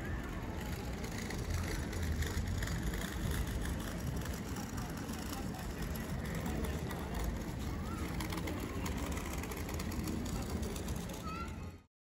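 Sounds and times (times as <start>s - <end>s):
faint indistinct voices: 0.0s - 11.9s.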